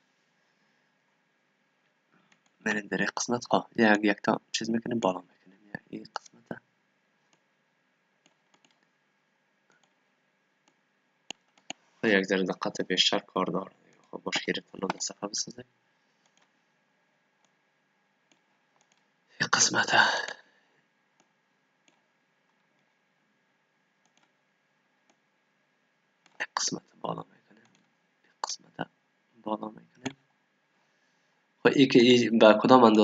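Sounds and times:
faint computer mouse clicks: 0:08.2 - 0:08.9, 0:09.7 - 0:10.0, 0:16.2 - 0:16.5, 0:18.3 - 0:19.0, 0:21.2 - 0:22.0, 0:24.0 - 0:24.3.

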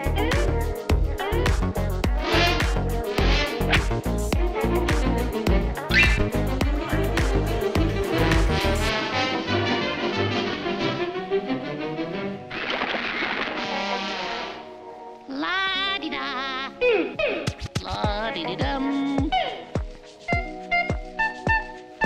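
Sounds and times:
cartoon music: 0:00.0 - 0:09.7, 0:15.3 - 0:22.0.

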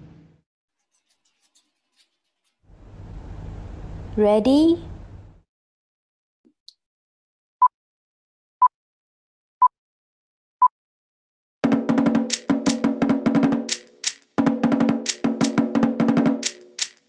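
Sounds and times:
deep drum beats: 0:11.6 - 0:17.0
wooden slit drum strokes: 0:11.9 - 0:17.0.

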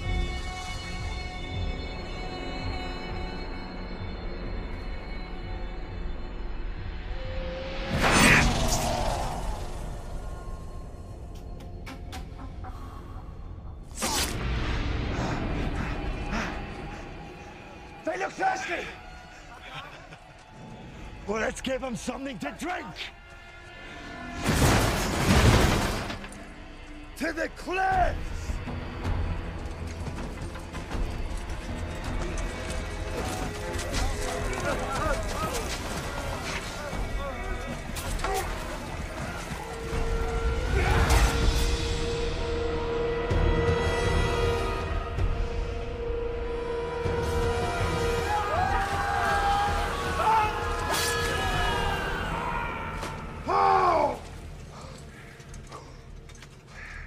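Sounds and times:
background music: 0:00.0 - 0:57.0
men yelling: 0:47.6 - 0:54.4.

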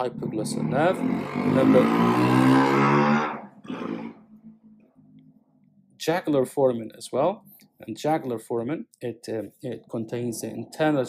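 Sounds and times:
man's voice drawn-out sound: 0:00.0 - 0:03.2
faint low hum: 0:03.2 - 0:11.0.

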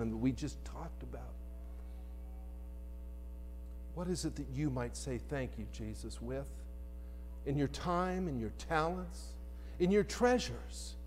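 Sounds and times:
electrical mains hum: 0:00.0 - 0:11.0
faint held tones: 0:01.1 - 0:04.0.

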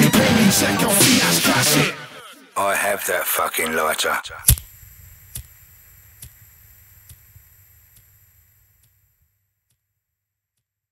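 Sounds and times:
low hum: 0:04.3 - 0:09.4
faint ticking: 0:04.4 - 0:09.3.

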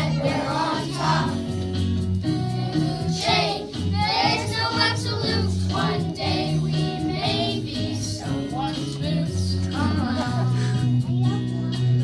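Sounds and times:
children singing: 0:00.0 - 0:01.4, 0:02.6 - 0:08.4
instrumental accompaniment: 0:00.0 - 0:12.0.

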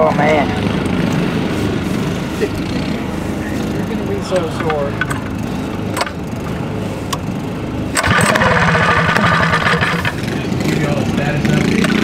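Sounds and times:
small engine running steadily: 0:00.0 - 0:12.0
small engine cranking: 0:07.9 - 0:10.3.

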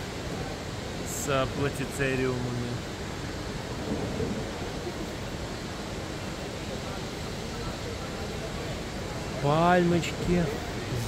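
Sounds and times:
rushing indoor background noise: 0:00.0 - 0:11.0.

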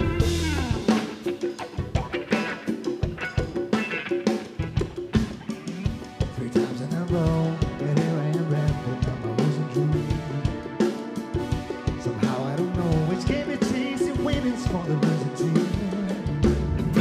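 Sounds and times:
drum kit beat: 0:00.0 - 0:17.0.

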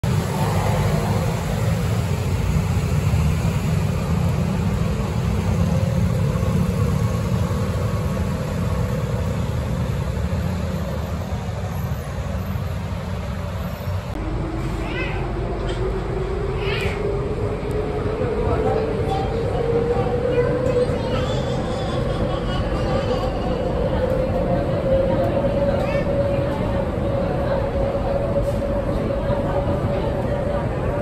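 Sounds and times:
city road traffic: 0:00.0 - 0:31.0.

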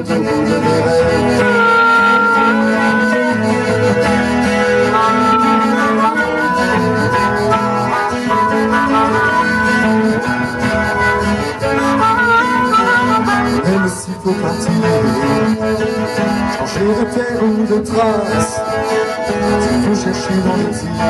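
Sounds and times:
harmonica melody: 0:00.0 - 0:21.0
strummed acoustic guitar: 0:00.0 - 0:21.0.

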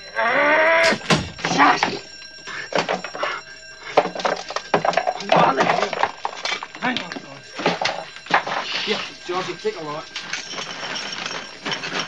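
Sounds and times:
alarm bell ringing: 0:00.0 - 0:12.0
voices: 0:01.5 - 0:10.5
clattering: 0:03.9 - 0:12.0.

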